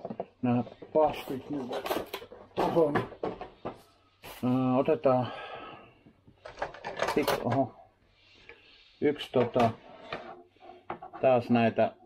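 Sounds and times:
plastic parts clicking and rattling: 0.0 - 3.7, 6.3 - 7.7.

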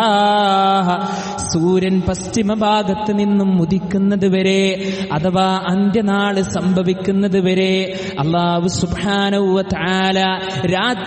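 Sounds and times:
man chanting melodic recitation: 0.0 - 11.0.

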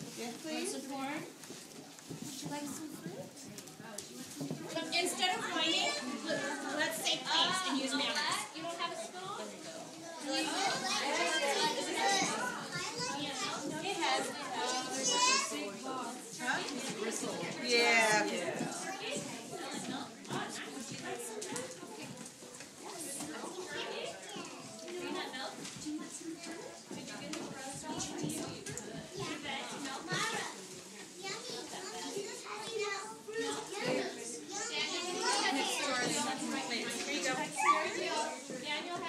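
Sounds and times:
children chattering: 0.0 - 39.0.

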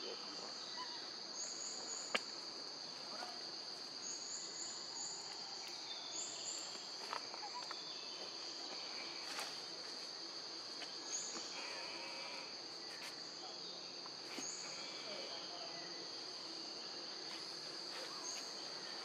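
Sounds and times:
insect chorus drone: 0.0 - 19.0.

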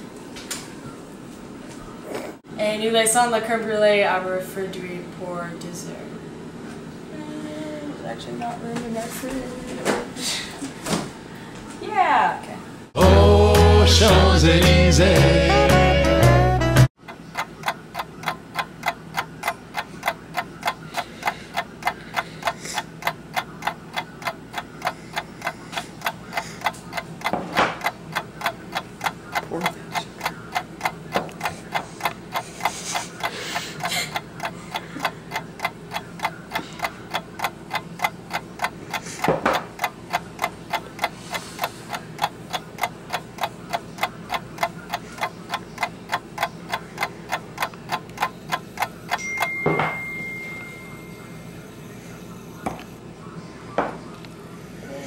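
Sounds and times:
rapid clock-like ticking: 17.0 - 49.3.

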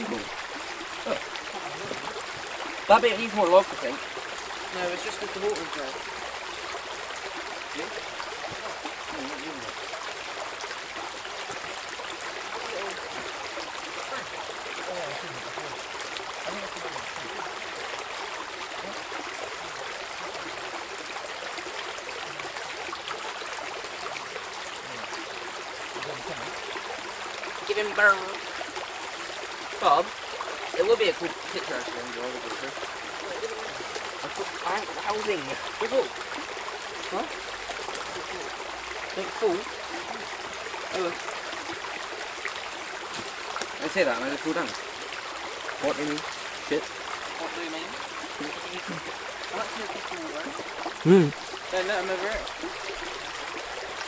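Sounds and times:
stream trickling: 0.0 - 54.0.

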